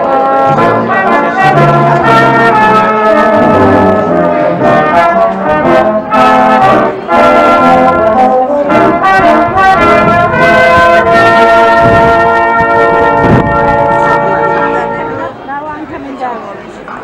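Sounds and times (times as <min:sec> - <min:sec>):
brass band playing: 0:00.0 - 0:15.4.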